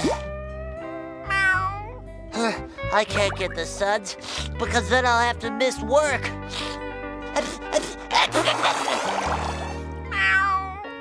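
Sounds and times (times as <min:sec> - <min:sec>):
background music with low notes: 0:00.0 - 0:11.0
cartoon cat-like meow: 0:01.2 - 0:02.0, 0:10.1 - 0:11.0.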